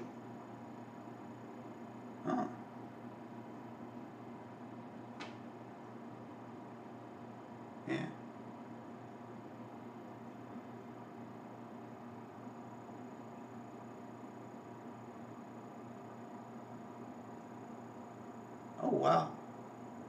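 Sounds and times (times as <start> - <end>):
low electrical hum: 0.0 - 20.0.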